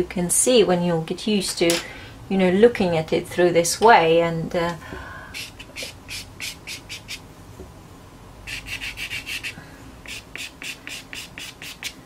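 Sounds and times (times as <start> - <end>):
pencil scratching on paper: 8.5 - 12.0.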